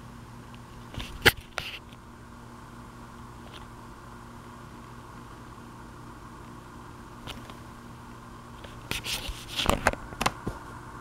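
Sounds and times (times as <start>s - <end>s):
low hum with hiss: 0.0s - 11.0s.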